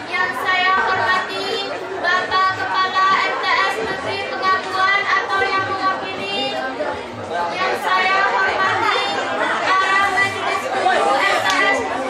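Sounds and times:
girl giving a speech: 0:00.1 - 0:06.6.

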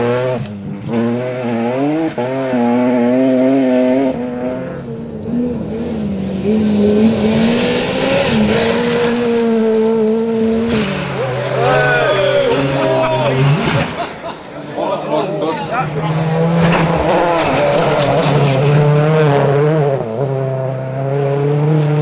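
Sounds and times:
rally car engines at full throttle: 0:00.0 - 0:22.0.

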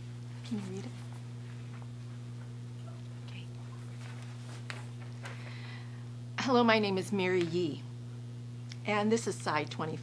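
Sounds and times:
low electrical hum: 0:00.0 - 0:10.0
person speaking softly: 0:00.4 - 0:01.1.

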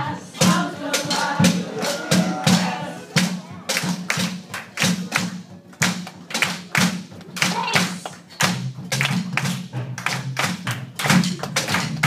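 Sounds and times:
rhythmic hand clapping: 0:00.0 - 0:12.0
thud on each beat: 0:00.3 - 0:12.0.

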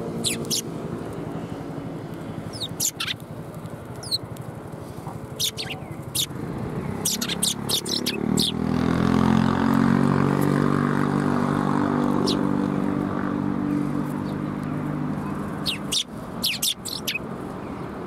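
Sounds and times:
sparrows chirping: 0:00.0 - 0:01.6, 0:02.2 - 0:08.9, 0:11.9 - 0:18.0
vehicle engine droning: 0:00.0 - 0:18.0.

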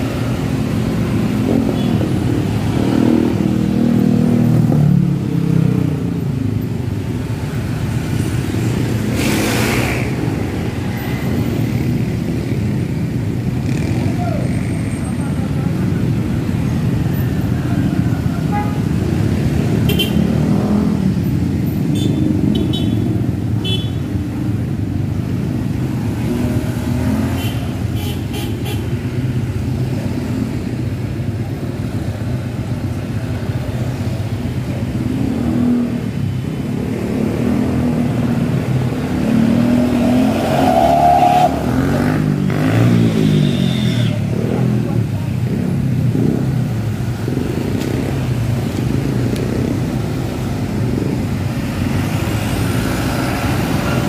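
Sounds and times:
road traffic driving past: 0:00.0 - 0:54.0.

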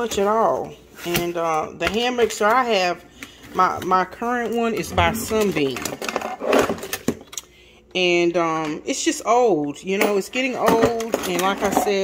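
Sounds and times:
utensils rustling and clattering: 0:03.6 - 0:07.4, 0:10.6 - 0:12.0.

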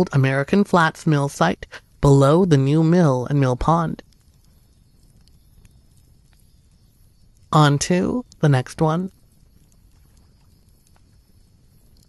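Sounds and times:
person speaking: 0:00.0 - 0:04.0, 0:07.5 - 0:09.1
faint steady hiss: 0:00.0 - 0:12.0.

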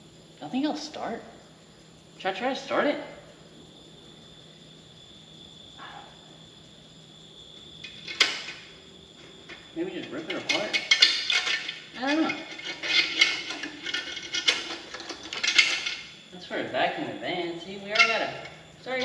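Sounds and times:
metal car parts clattering: 0:07.8 - 0:16.2, 0:17.9 - 0:19.0.

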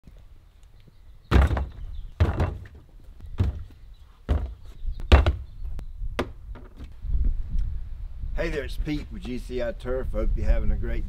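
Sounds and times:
plastic jugs thunking on lid: 0:01.3 - 0:02.8.

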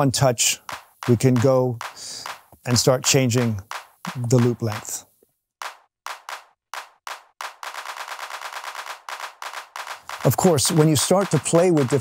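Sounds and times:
electronic handclaps: 0:00.6 - 0:05.0, 0:05.6 - 0:12.0.

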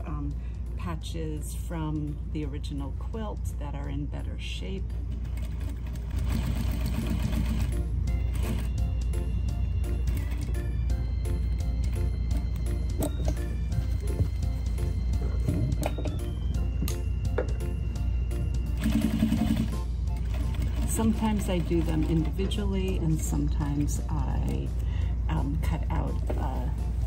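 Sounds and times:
background music sustained notes: 0:00.0 - 0:27.0
sewing machine running: 0:05.2 - 0:08.8, 0:10.0 - 0:10.6, 0:18.6 - 0:23.3.

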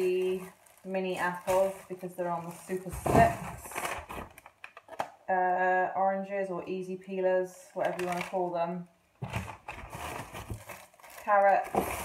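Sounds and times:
plastic bag rustling and crinkling: 0:00.0 - 0:05.0, 0:09.2 - 0:12.0
plastic crackles: 0:00.0 - 0:05.3, 0:07.7 - 0:08.5, 0:09.2 - 0:12.0.

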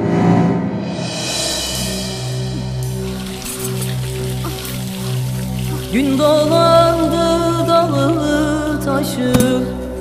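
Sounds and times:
low drone background music: 0:00.0 - 0:10.0
water splashing: 0:02.3 - 0:09.6
person singing: 0:05.8 - 0:10.0.

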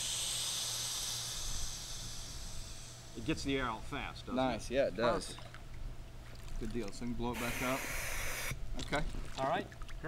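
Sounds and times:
valve venting air hiss: 0:00.0 - 0:03.3, 0:07.3 - 0:08.6.

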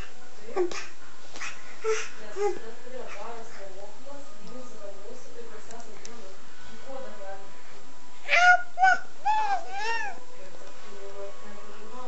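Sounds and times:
baby making vocal sounds: 0:08.2 - 0:10.2.

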